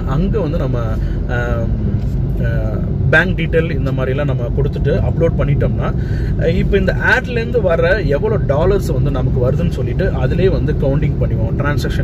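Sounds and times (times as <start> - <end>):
car interior rumble: 0.0 - 12.0
man speaking: 0.0 - 12.0.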